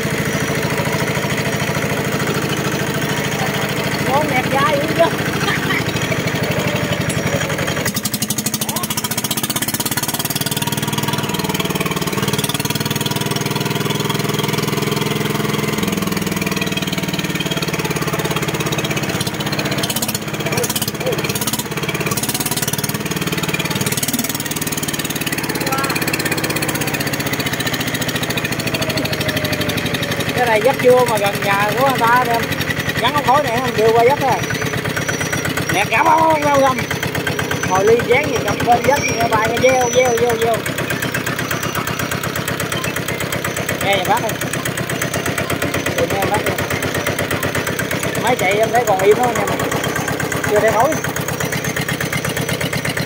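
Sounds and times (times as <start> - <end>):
diesel engine running: 0.0 - 53.0.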